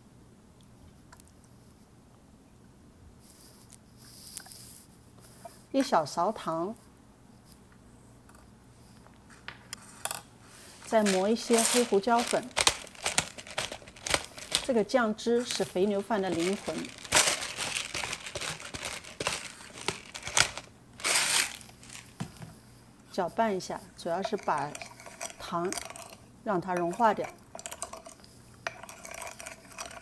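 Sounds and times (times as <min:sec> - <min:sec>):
pepper mill grinding: 0:10.8 - 0:22.2, 0:24.1 - 0:30.0.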